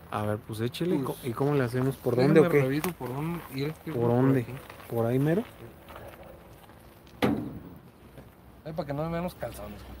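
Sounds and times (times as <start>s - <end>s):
sharp thump: 7.2s - 7.9s.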